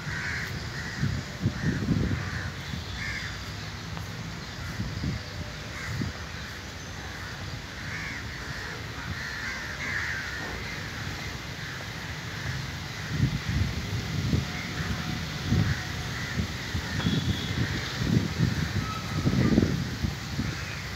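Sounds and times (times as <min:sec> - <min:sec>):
crows cawing: 0:00.0 - 0:03.4, 0:05.7 - 0:13.3, 0:14.6 - 0:19.6, 0:20.4 - 0:20.8.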